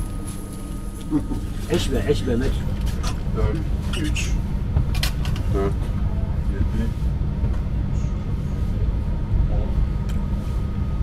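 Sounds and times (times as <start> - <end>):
train carriage rumble: 0.0 - 11.0.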